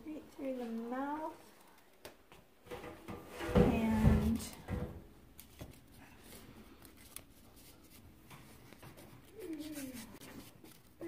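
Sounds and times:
handling bumps and knocks: 2.6 - 5.8.

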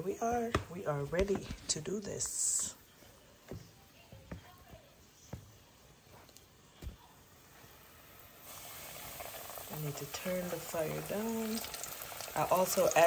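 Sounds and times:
hot oil sizzling: 7.4 - 13.0.

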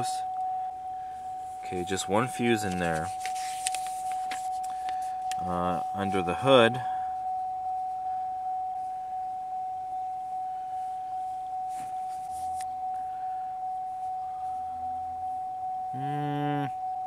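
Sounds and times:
dashboard warning chime: 0.0 - 17.0
paper rustle: 1.6 - 5.4, 11.7 - 12.7.

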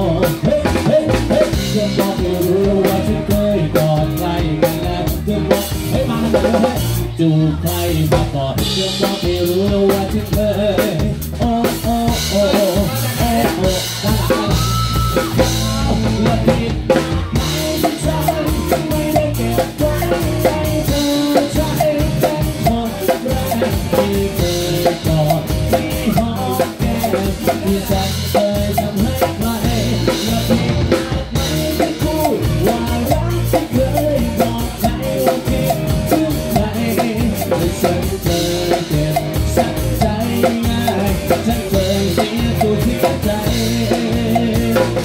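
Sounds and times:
live band playing: 0.0 - 45.0
drum kit hits and cymbals: 7.7 - 45.0.

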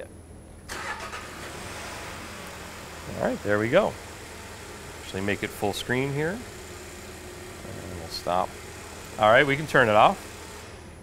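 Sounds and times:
car engine starting and idling: 0.6 - 11.0.

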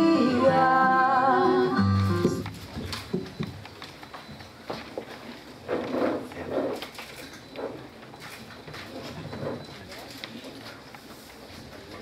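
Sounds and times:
murmur of voices in a hall: 4.8 - 12.0.

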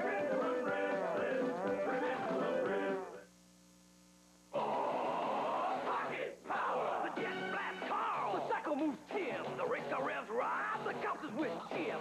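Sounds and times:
faint mains hum: 0.0 - 12.0.

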